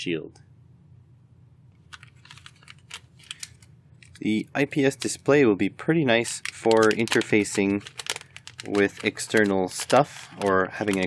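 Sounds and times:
plastic bags crinkling: 0:01.9 - 0:05.2, 0:06.2 - 0:11.0.

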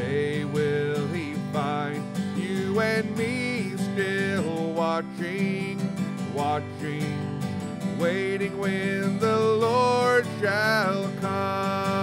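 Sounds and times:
man singing a hymn: 0:00.0 - 0:12.0
strummed acoustic guitar: 0:00.0 - 0:12.0.

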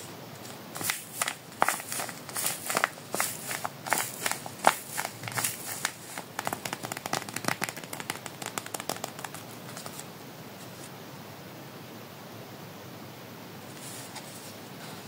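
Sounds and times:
paper squishy crinkling: 0:00.4 - 0:10.1.

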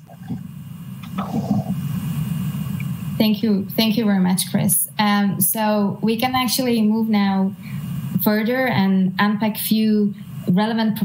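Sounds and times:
low rumbling background noise: 0:00.0 - 0:11.0.

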